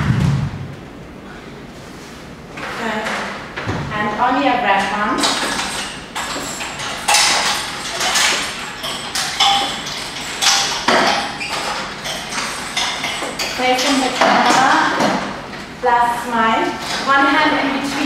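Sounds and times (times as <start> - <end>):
people talking: 2.7 - 3.3, 3.9 - 5.4, 13.6 - 15.2, 15.8 - 18.0
knocks and metallic clinks: 4.7 - 15.7.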